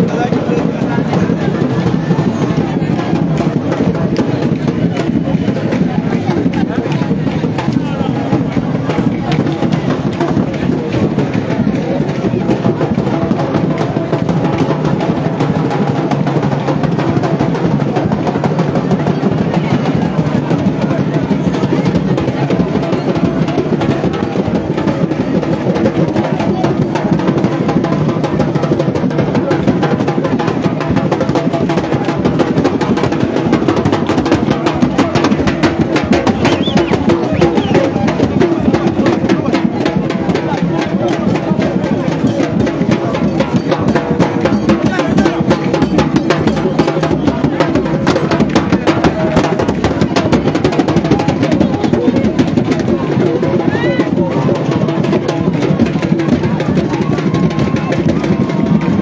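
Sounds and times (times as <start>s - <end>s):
crowd voices: 0.0s - 59.0s
live drumming: 0.0s - 59.0s.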